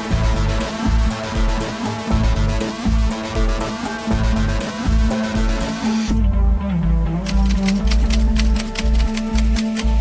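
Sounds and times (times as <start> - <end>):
electronic music with bass beat: 0.0 - 10.0
typewriter key clicks: 7.2 - 10.0.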